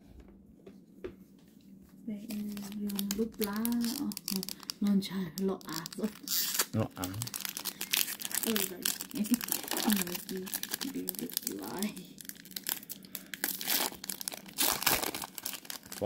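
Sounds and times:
card pack wrapper crinkling: 2.3 - 16.0
wrapper tearing open: 2.3 - 16.0
quiet voice murmuring: 6.8 - 7.3.

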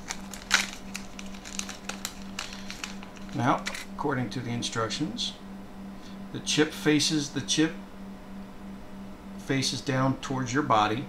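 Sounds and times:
foil bag crinkling: 0.0 - 4.0.

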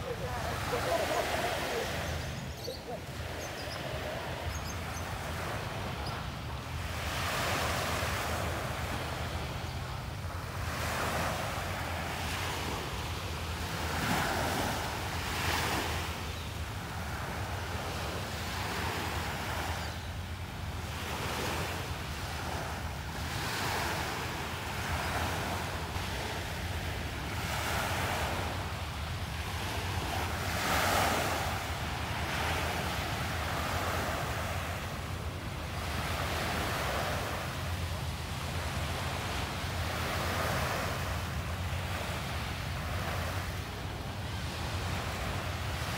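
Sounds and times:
small waves breaking on beach: 0.0 - 45.9.

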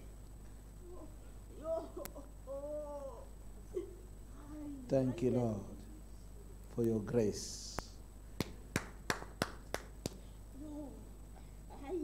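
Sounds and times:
finger snapping: 8.4 - 10.2.

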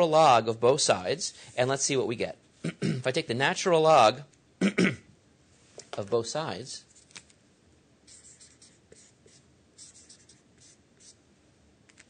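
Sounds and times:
marker pen scratching on paper: 8.0 - 11.2.

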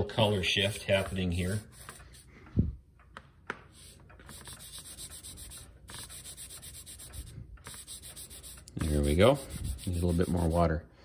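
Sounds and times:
cotton ball rubbing on brass: 3.8 - 10.7.

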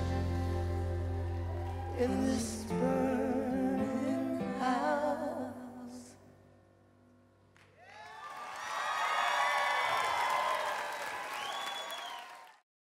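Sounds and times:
audience applause and cheering: 0.0 - 3.8, 7.6 - 12.6
whistle: 11.2 - 12.4.

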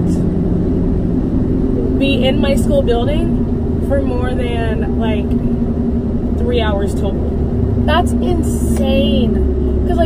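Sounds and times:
car road and engine rumble: 0.0 - 10.0
faint hum: 0.0 - 10.0.

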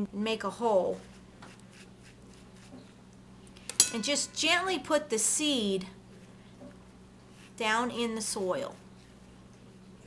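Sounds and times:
low steady hum: 0.0 - 10.0
pen scratching in potting mix: 0.8 - 3.0.

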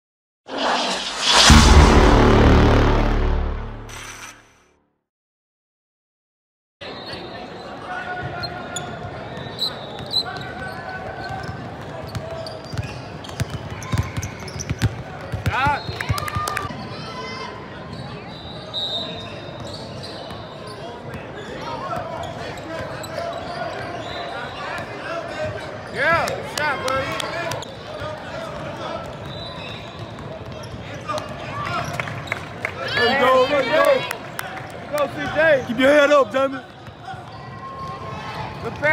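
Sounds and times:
heavy low impact hit: 0.5 - 4.5
rising whoosh: 0.5 - 4.6
voices echoing in gym: 20.4 - 29.6, 32.8 - 38.9.

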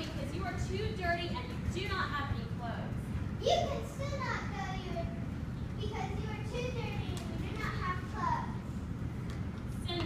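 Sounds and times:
low room rumble: 0.0 - 10.0
children talking: 3.3 - 8.8.

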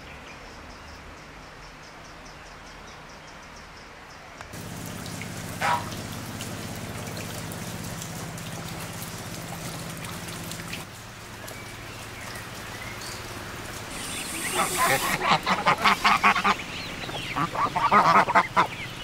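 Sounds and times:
raindrops ticking: 4.5 - 19.0.

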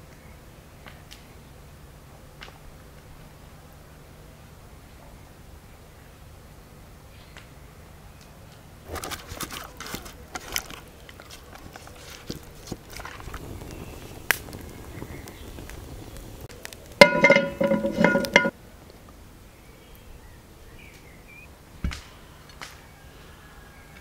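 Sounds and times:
wood fire crackling: 0.7 - 4.2, 7.3 - 19.3.

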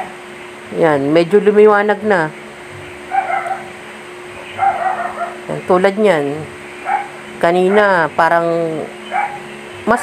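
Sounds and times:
steady hum: 0.0 - 10.0
dog yipping: 3.1 - 3.8, 4.5 - 5.4, 6.8 - 8.0, 9.0 - 9.5.

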